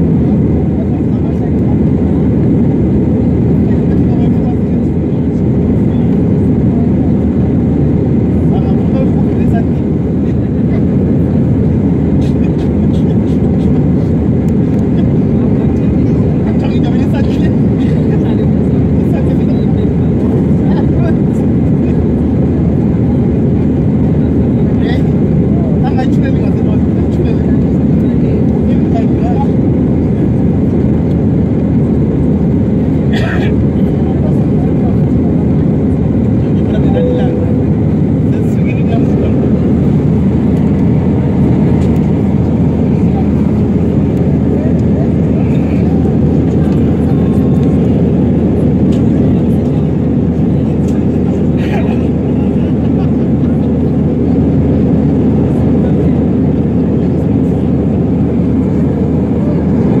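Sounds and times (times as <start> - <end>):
jet engines and airflow rumble: 0.0 - 60.0.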